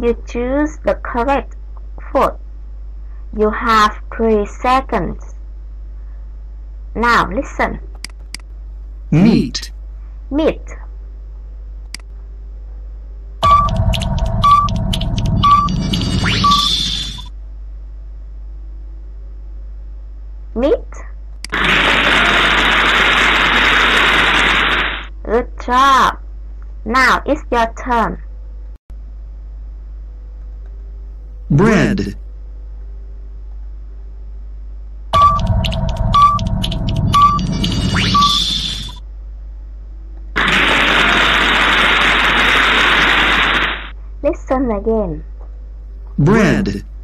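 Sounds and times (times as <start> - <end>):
noisy game sound effect: 13.4 - 17.3, 21.5 - 25.1, 35.2 - 39.0, 40.4 - 43.9, 46.2 - 46.8
loud rushing hiss: 21.5 - 25.1, 40.4 - 43.9.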